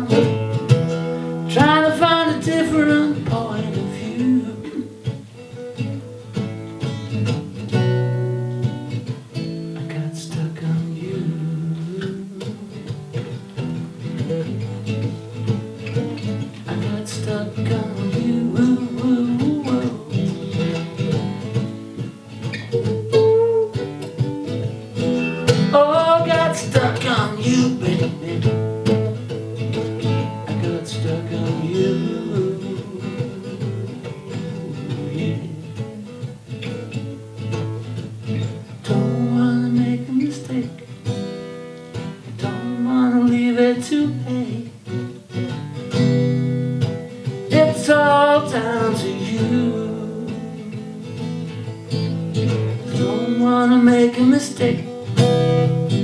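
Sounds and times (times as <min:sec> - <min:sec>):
man singing: 0:00.0 - 0:05.2, 0:09.6 - 0:13.3, 0:16.2 - 0:24.1, 0:25.0 - 0:36.8, 0:38.7 - 0:41.1, 0:42.2 - 0:45.1, 0:47.3 - 0:51.3, 0:52.4 - 0:56.0
acoustic guitar strumming: 0:00.0 - 0:56.0.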